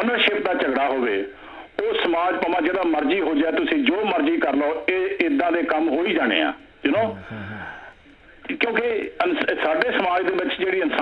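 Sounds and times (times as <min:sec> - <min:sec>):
person talking over telephone: 0:06.9 - 0:07.4.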